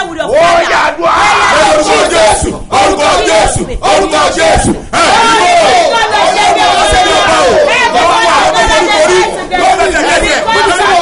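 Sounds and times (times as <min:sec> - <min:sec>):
man and woman praying aloud: 0:00.0 - 0:11.0.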